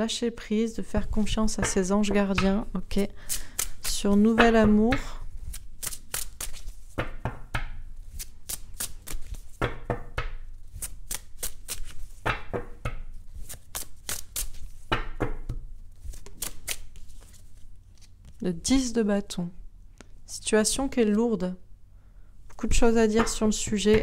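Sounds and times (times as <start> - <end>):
cards being shuffled: 3.3 - 7.2, 8.0 - 9.8, 10.5 - 18.4.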